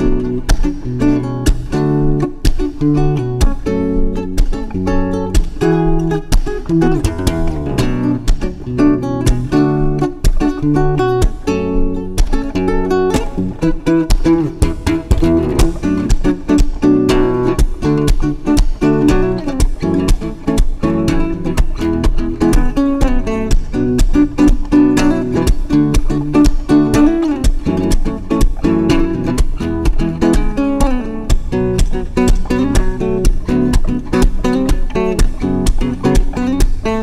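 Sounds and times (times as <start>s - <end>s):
acoustic guitar fingerstyle: 0.0s - 37.0s.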